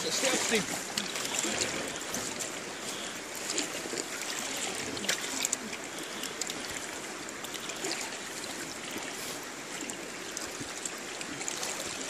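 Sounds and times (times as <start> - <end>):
river water rushing: 0.0 - 12.0
water trickling splashes: 0.0 - 12.0.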